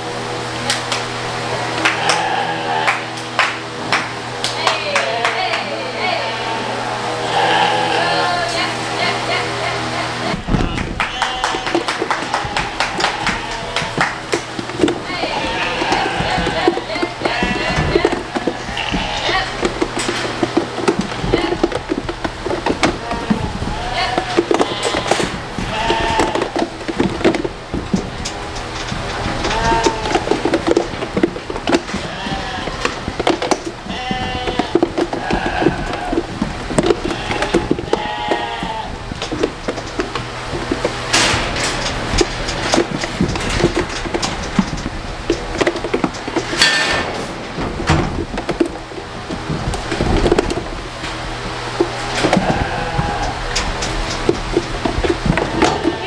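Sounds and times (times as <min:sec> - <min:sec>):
lambs bleating: 0:01.5 - 0:03.1, 0:04.8 - 0:26.9, 0:28.8 - 0:30.8, 0:31.6 - 0:39.4, 0:51.9 - 0:54.0, 0:55.3 - 0:56.0
knocks and clangs on steel: 0:10.6 - 0:51.2.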